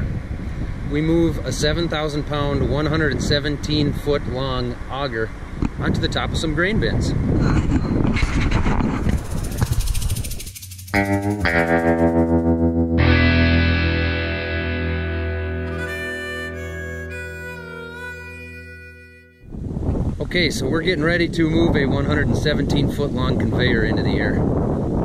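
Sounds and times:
distorted electric guitar music: 10.8s - 19.4s.

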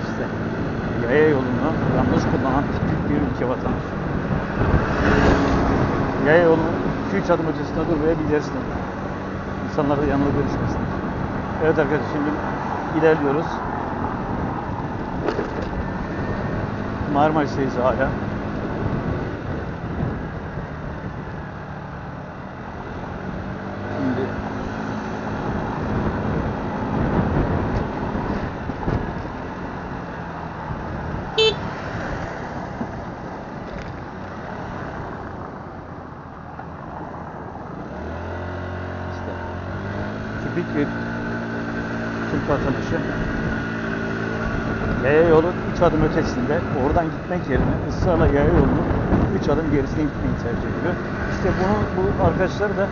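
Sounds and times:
wind noise on microphone: 0.0s - 11.7s, 13.6s - 17.1s, 18.1s - 38.1s, 39.6s - 52.9s
low road rumble: 0.0s - 52.9s
motorbike engine running: 31.3s - 31.8s.

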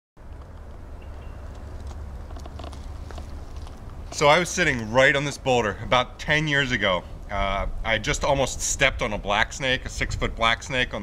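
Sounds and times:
low rumble on microphone: 0.2s - 11.0s
dry leaves crunching underfoot: 0.4s - 5.5s.

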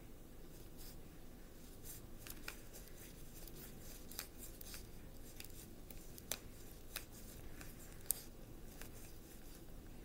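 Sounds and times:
cards being shuffled: 1.6s - 9.7s.

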